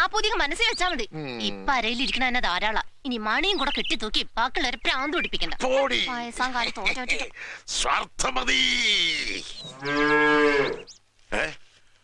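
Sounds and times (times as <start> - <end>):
cow mooing: 9.6 - 10.9.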